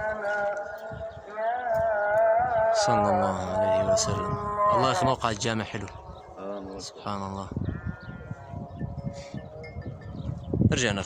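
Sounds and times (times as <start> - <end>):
distant call to prayer: 0.0 - 11.0.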